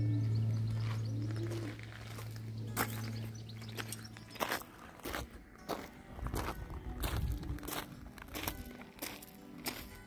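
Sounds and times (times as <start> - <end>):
pigeon cooing: 0.0 - 2.2
steady low hum: 0.0 - 8.2.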